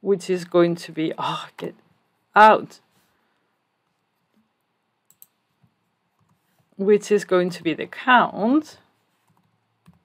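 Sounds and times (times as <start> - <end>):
computer keyboard keystrokes: 5.1 - 5.4.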